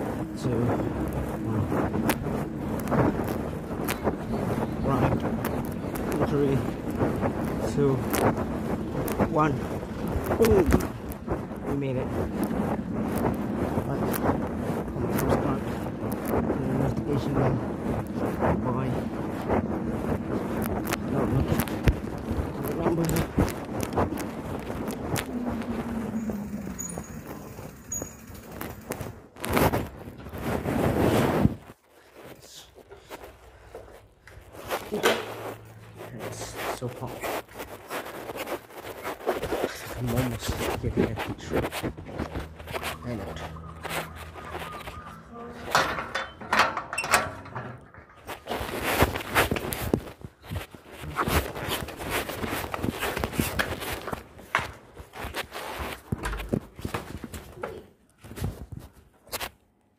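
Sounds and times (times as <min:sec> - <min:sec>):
footsteps: 0:00.0 - 0:59.6.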